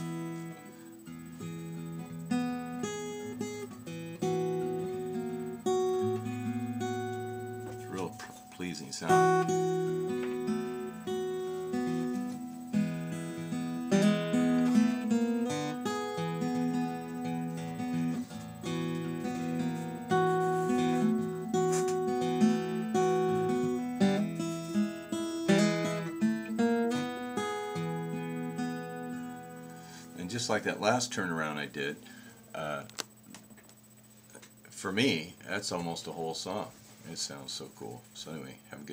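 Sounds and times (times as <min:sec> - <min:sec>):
acoustic guitar picking: 0:00.0 - 0:32.9.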